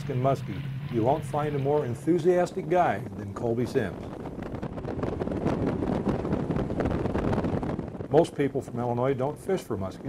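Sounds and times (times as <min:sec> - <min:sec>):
rush of boat underway: 0:00.0 - 0:10.0
wind buffeting microphone: 0:00.0 - 0:10.0.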